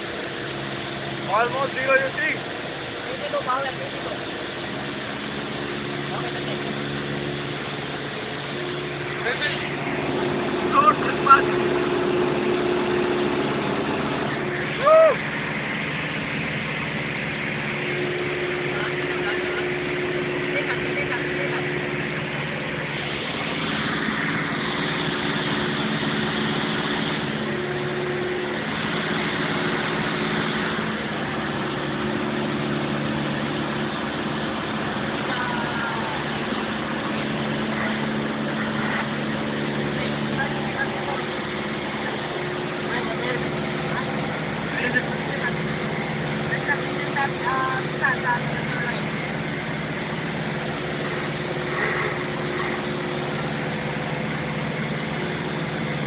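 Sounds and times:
airplane engine and propeller drone: 0:00.0 - 0:56.0.

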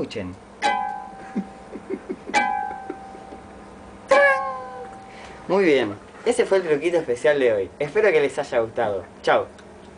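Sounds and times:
high plucked guitar string notes: 0:00.6 - 0:01.7, 0:02.3 - 0:03.5, 0:04.1 - 0:05.2.

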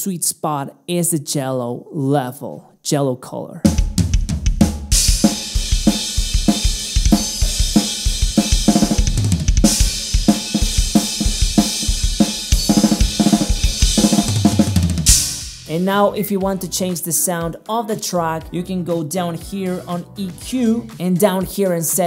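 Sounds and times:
drum kit groove: 0:03.6 - 0:22.0
cymbals washing: 0:04.9 - 0:15.9
cymbal crash: 0:09.6 - 0:15.8.

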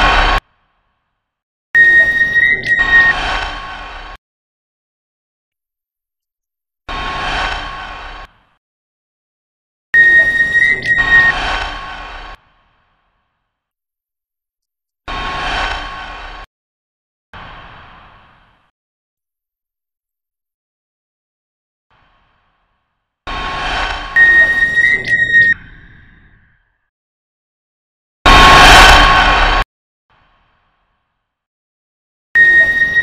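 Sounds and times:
noisy rush with whistle tone: 0:01.8 - 0:04.1, 0:10.0 - 0:12.4, 0:23.3 - 0:26.7, 0:28.3 - 0:29.6, 0:32.4 - 0:33.0.

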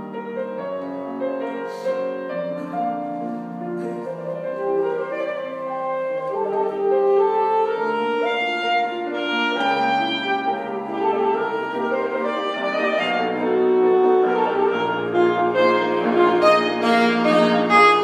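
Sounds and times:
alto saxophone melody: 0:00.0 - 0:18.0
piano accompaniment: 0:00.0 - 0:18.0.

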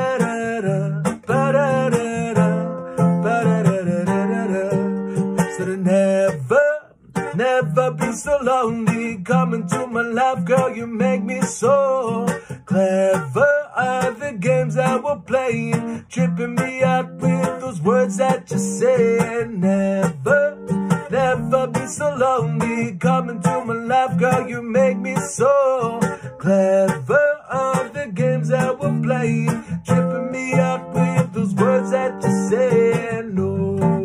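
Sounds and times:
acoustic guitar playing: 0:00.0 - 0:34.0.

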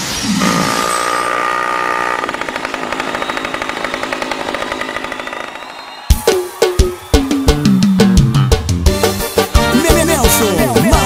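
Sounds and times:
small motorbike engine revving: 0:00.3 - 0:06.1.

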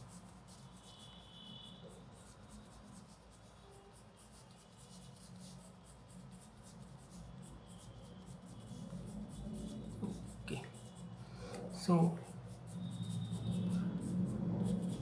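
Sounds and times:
colored pencil scratching on paper: 0:00.0 - 0:15.0.

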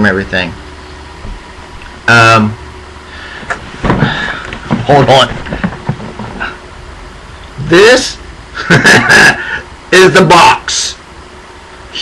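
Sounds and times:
rustling and knocking: 0:03.4 - 0:06.6.

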